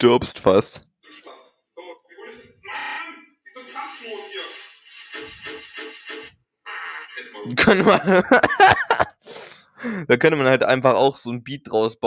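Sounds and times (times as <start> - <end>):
stuttered sound snippet: 2.2 - 8.0.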